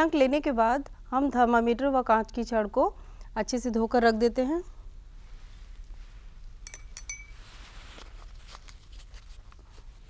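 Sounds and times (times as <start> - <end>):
glass clinking against beaker: 6.6 - 7.4.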